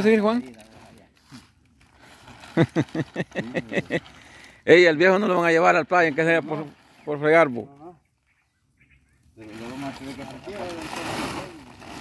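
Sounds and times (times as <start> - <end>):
silage rustling in plastic sack: 0.0 - 4.2, 9.6 - 12.0.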